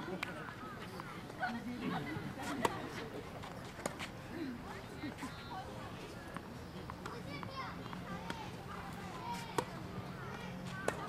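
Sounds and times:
children's voices chattering: 0.0s - 3.4s, 4.2s - 11.0s.

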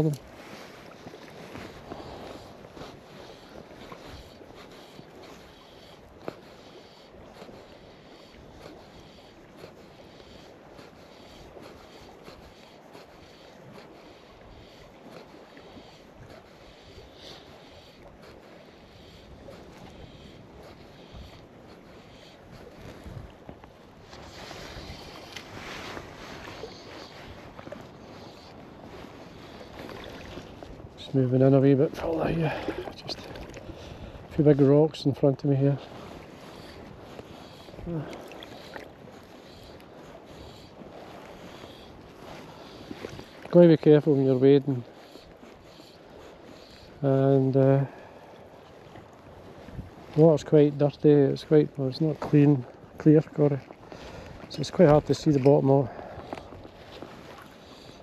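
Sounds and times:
waves lapping and splashing: 0.0s - 58.0s
wind on microphone: 19.3s - 31.0s, 31.9s - 34.8s, 48.8s - 50.2s.

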